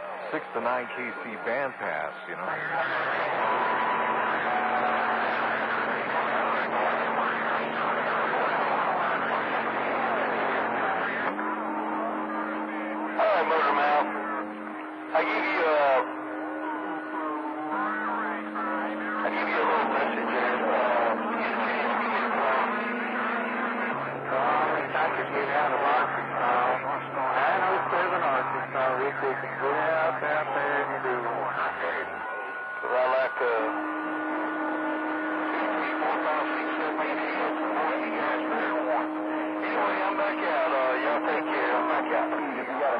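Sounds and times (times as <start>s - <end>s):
garbled radio voices: 0.0s - 42.9s
steady low radio tones: 0.0s - 42.9s.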